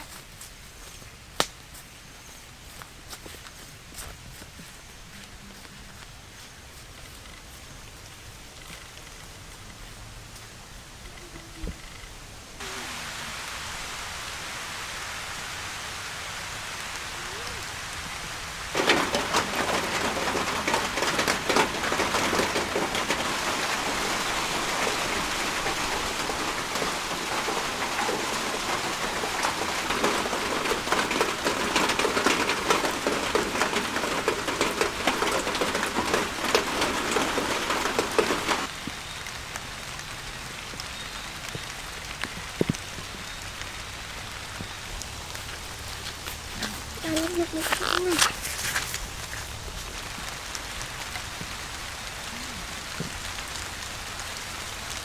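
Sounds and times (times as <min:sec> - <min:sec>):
rain falling: 0:00.0 - 0:55.0.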